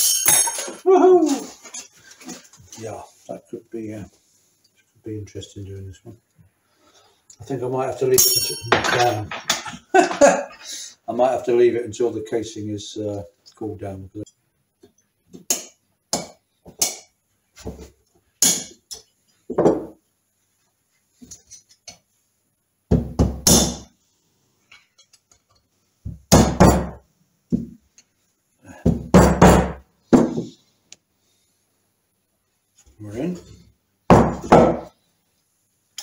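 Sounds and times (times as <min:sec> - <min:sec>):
metallic clinks: 0:00.0 - 0:00.8, 0:08.2 - 0:09.2.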